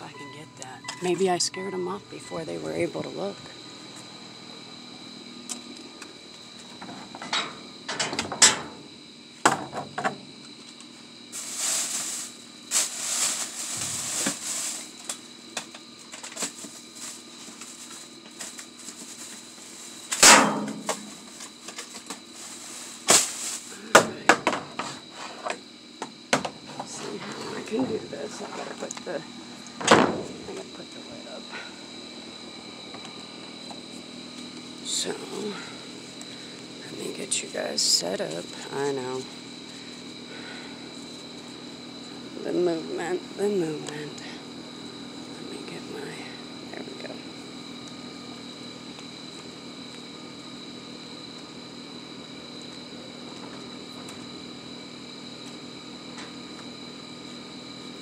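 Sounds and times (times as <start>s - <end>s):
faint high whine: 0.0s - 58.0s
plastic bags rustling: 11.3s - 15.0s
knocks against metal dumpster: 20.2s - 21.1s.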